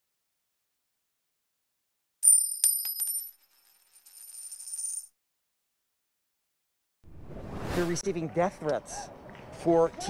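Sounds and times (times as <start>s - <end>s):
coin ringing metallic strikes: 2.2s - 5.1s
coin spinning down rattle: 2.2s - 5.1s.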